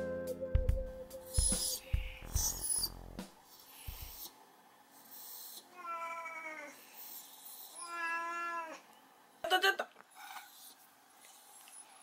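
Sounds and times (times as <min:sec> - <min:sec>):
music: 0:00.0 - 0:03.3
cat meowing: 0:05.7 - 0:06.8, 0:07.8 - 0:08.8.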